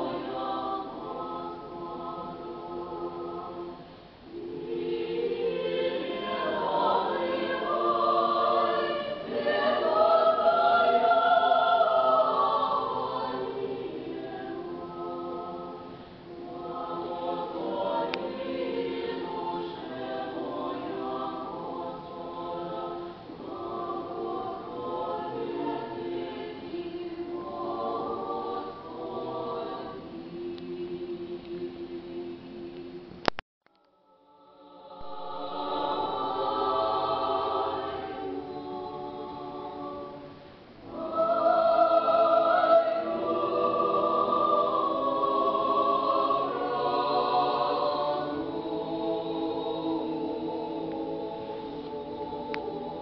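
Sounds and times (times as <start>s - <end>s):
choir singing a cappella: 0.0s - 33.2s, 33.9s - 53.0s.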